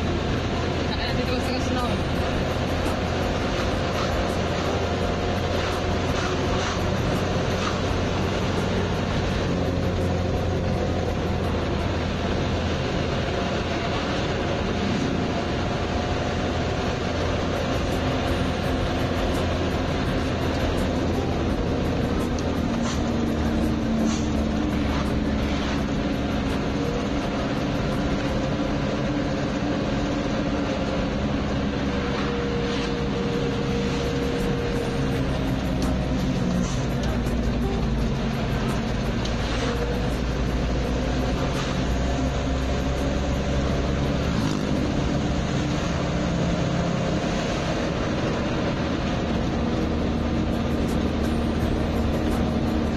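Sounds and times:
music in vehicle cab: 0:00.0 - 0:52.9
vehicle engine and road noise: 0:00.0 - 0:52.9.

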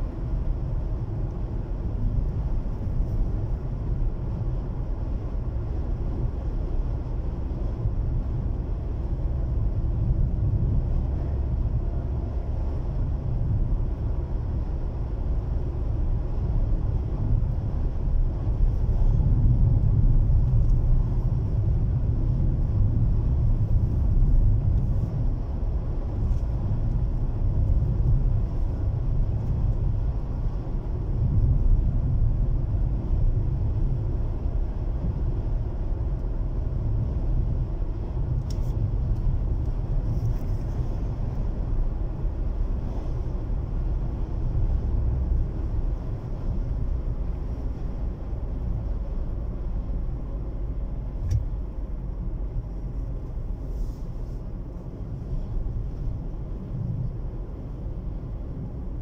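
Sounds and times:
car road and engine rumble: 0:00.0 - 0:59.0.

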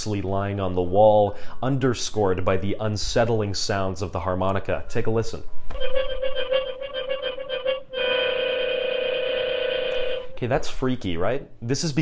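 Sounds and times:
harmonica note: 0:05.7 - 0:10.4.

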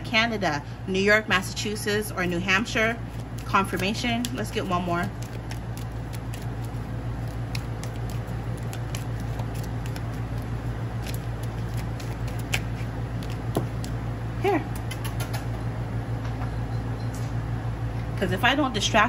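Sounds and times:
cards being shuffled: 0:02.2 - 0:14.0.

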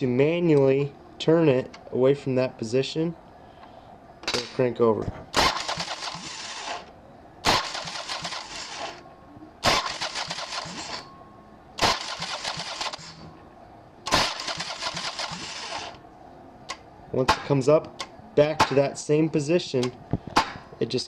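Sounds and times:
starter motor cranking engine: 0:05.4 - 0:06.9, 0:07.5 - 0:09.0, 0:09.7 - 0:11.0, 0:11.8 - 0:13.2, 0:14.1 - 0:16.0.

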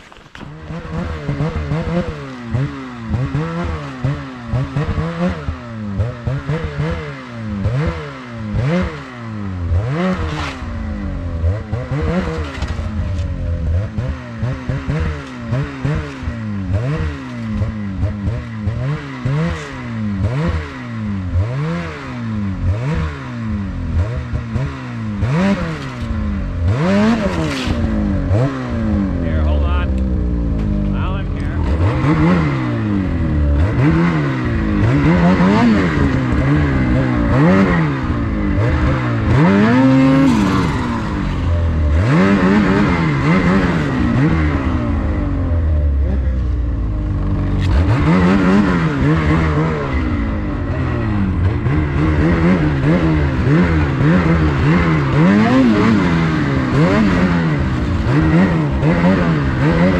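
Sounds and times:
snowmobile engine revving: 0:00.0 - 0:59.9.

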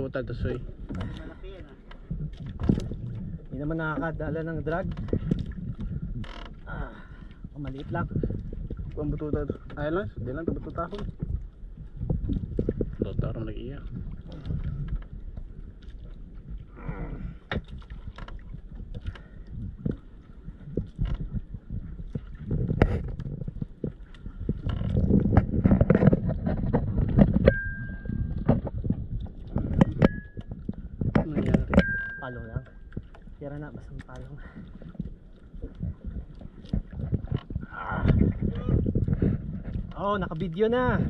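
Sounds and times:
water slapping against boat hull: 0:00.0 - 0:41.0
knocks and clicks: 0:24.7 - 0:33.1
short high beeps: 0:27.5 - 0:28.4, 0:31.8 - 0:32.7.

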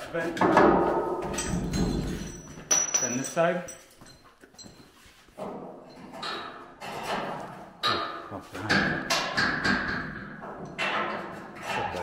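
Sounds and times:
men talking: 0:02.9 - 0:03.7, 0:07.9 - 0:08.9.

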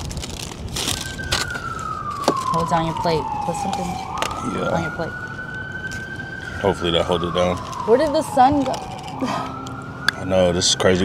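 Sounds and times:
wind rumbling on microphone: 0:00.0 - 0:10.2
siren wailing: 0:00.0 - 0:11.0.

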